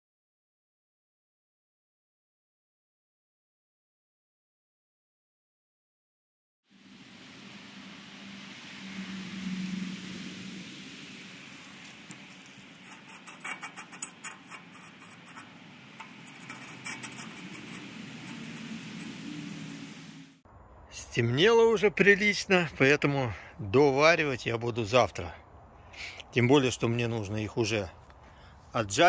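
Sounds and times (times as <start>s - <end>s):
low hum: 6.7s - 21.2s.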